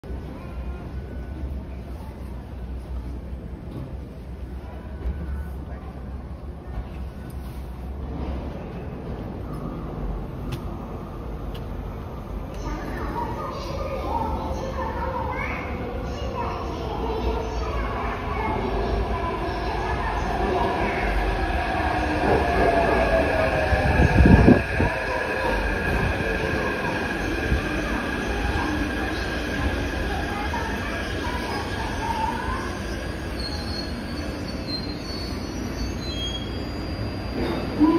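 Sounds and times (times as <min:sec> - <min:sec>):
metro train rumbling in tunnel: 0:00.0 - 0:37.9
wheels and brakes squealing: 0:30.6 - 0:37.9.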